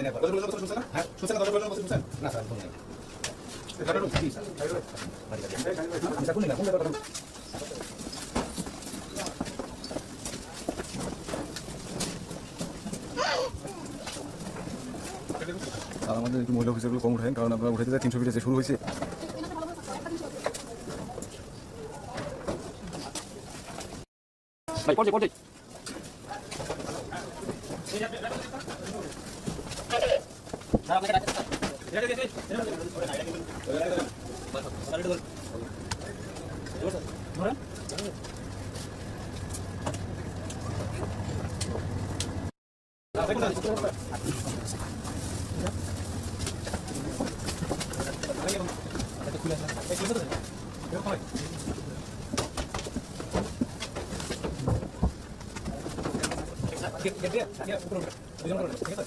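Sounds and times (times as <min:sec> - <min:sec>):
low murmuring voices: 0:00.0 - 0:24.0, 0:25.6 - 0:42.5.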